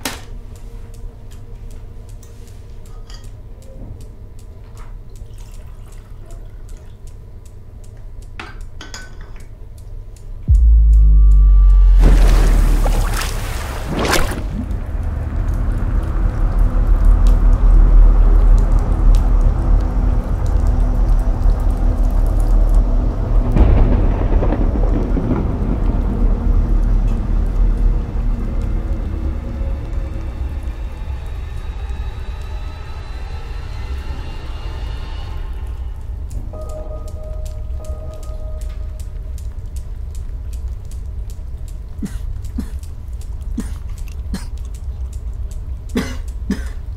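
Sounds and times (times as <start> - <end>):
thunder-like noise swells: 10.5 - 40.7
deep bass rumble: 10.5 - 40.8.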